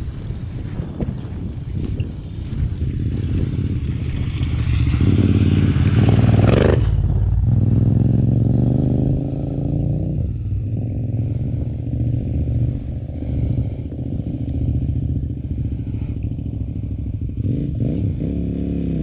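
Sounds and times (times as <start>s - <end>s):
motorcycle engine revving: 0.1s - 19.0s
motorcycle engine idling: 1.5s - 18.0s.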